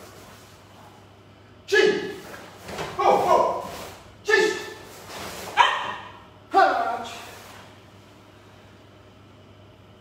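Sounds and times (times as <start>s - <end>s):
sharp martial arts shouts: 1.7s - 2.2s, 2.8s - 7.3s.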